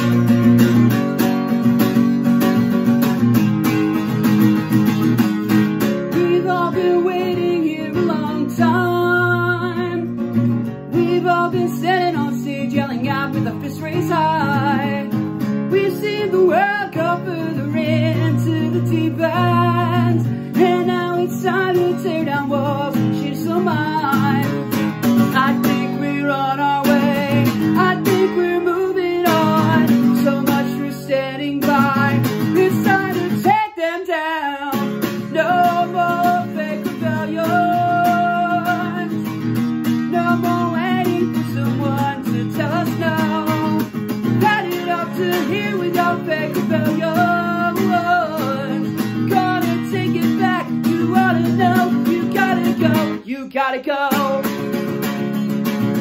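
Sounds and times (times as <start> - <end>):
acoustic guitar strummed: 0.0 - 56.0
man singing: 6.1 - 10.1, 10.9 - 54.8.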